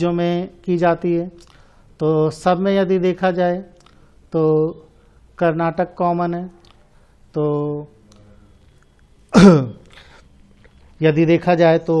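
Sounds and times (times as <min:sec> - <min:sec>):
man clearing his throat: 0:09.3 - 0:09.9.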